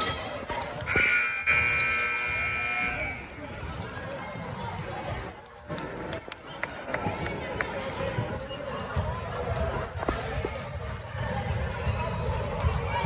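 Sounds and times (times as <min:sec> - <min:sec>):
voices in gym: 0:00.0 - 0:13.0
scoreboard horn blast: 0:00.9 - 0:03.2.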